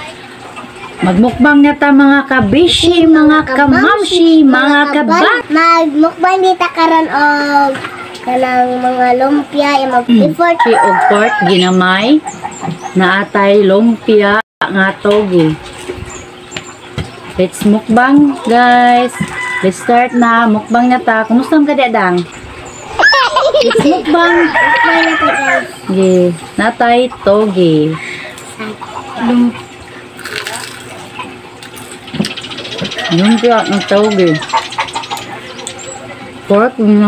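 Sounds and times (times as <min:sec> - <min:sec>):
woman speaking: 0:01.0 - 0:05.6, 0:10.1 - 0:15.6, 0:17.3 - 0:22.3, 0:23.6 - 0:28.2, 0:33.0 - 0:34.6, 0:36.4 - 0:37.0
crunchy bites and chewing: 0:30.2 - 0:31.0.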